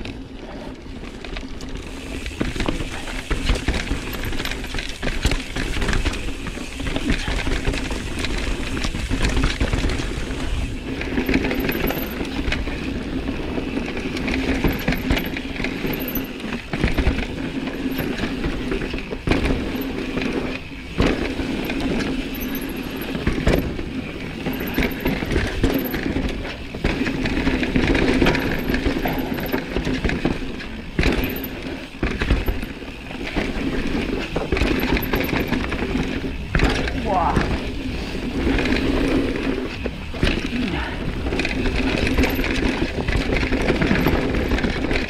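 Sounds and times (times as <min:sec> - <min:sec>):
bike rattling over rocks: 0:00.0 - 0:45.0
bike tyres on dirt: 0:00.0 - 0:45.0.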